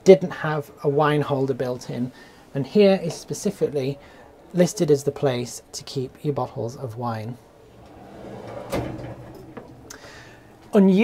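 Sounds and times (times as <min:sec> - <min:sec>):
wire basket sliding on runners: 0:07.5 - 0:10.8.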